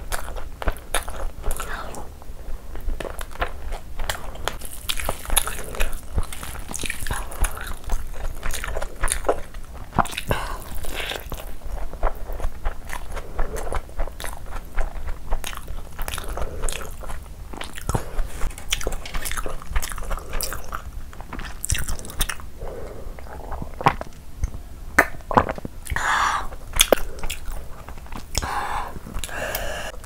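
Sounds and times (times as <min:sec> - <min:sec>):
close-miked chewing: 0:00.0 - 0:30.0
sharp mouth clicks: 0:23.2 - 0:30.0.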